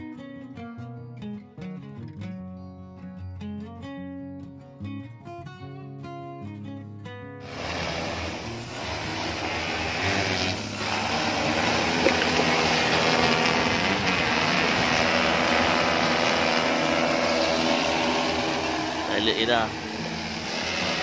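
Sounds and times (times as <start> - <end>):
drone propellers whirring: 7.4 - 21.0.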